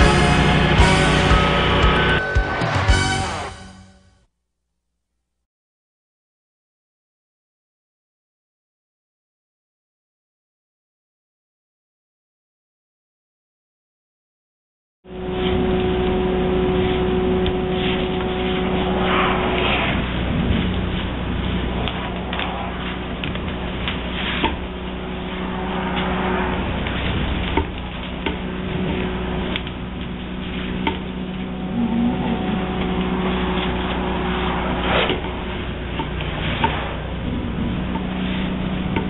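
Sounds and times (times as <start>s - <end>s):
machine hum: 0.0s - 3.8s, 15.1s - 39.0s
vacuum sucking insulation: 15.1s - 39.0s
air and material rushing through hose: 15.2s - 39.0s.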